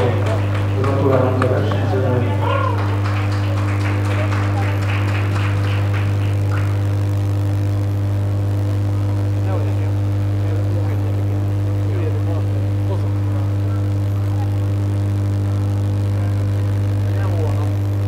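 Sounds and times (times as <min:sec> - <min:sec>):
people chattering: 0:00.0 - 0:08.0, 0:09.4 - 0:17.8
loud steady low hum: 0:00.0 - 0:18.0.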